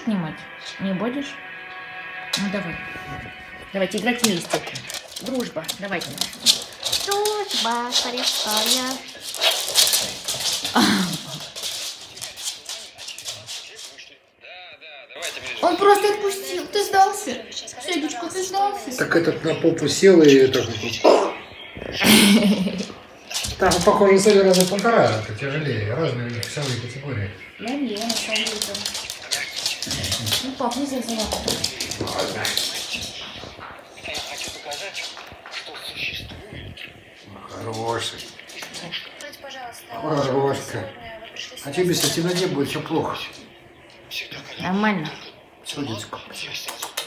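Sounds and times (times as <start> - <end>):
paws and toy scuffling on floor: 2.4 - 14.1, 20.2 - 43.4.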